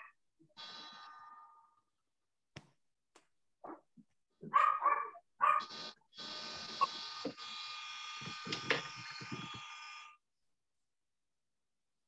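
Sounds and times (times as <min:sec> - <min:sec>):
high buzzing motor noise: 0:00.6 - 0:01.5, 0:05.6 - 0:10.2
dog barking: 0:04.4 - 0:05.8.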